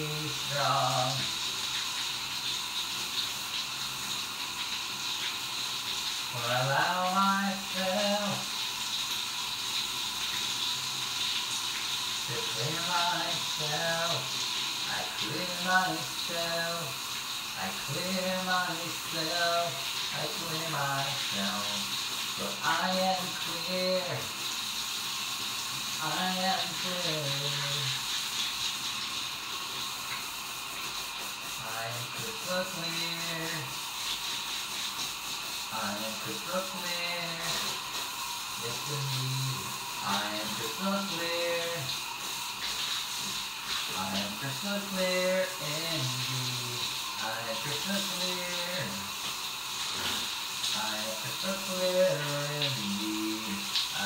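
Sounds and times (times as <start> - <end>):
person singing: 0.0 - 1.3, 6.3 - 8.5, 12.3 - 14.3, 14.9 - 17.0, 17.6 - 24.3, 26.0 - 28.0, 31.6 - 33.8, 35.7 - 37.7, 38.6 - 41.9, 43.9 - 49.1, 50.7 - 54.0
running water hissing: 0.0 - 54.0.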